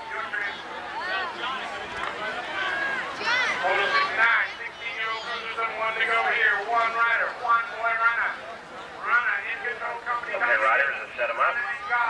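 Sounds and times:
man talking: 3.6 - 8.4, 9.0 - 12.0.

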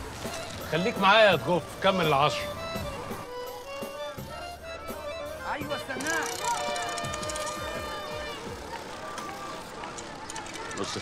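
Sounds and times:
film soundtrack music: 0.0 - 9.6
street ambience: 0.0 - 11.0.

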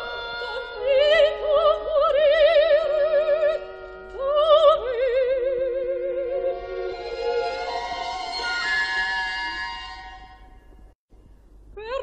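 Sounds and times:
soprano singing with vibrato: 0.0 - 10.3
opera orchestra sustained chords: 0.0 - 10.7.

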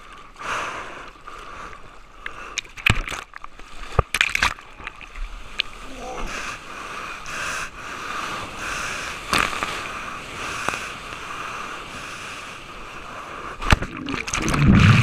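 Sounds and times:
sea water rushing against camera: 7.9 - 15.0
low churning rumble: 11.3 - 15.0.

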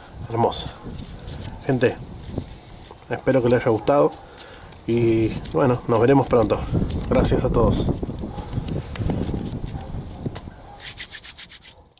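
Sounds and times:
hand rubbing microphone: 0.7 - 11.9.

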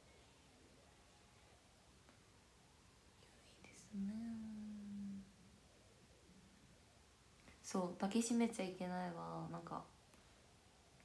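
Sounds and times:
woman whispering: 3.2 - 5.3
woman humming: 3.6 - 5.4.

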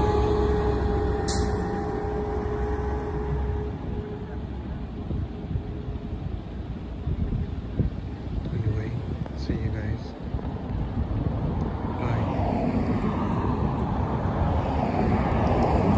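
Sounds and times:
bus engine rumble and whine: 0.0 - 15.9.

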